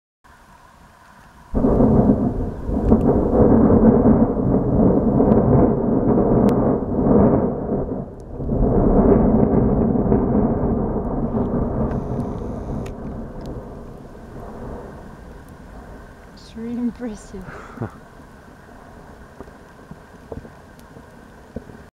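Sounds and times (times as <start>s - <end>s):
volcanic eruption rumble: 1.5s - 21.9s.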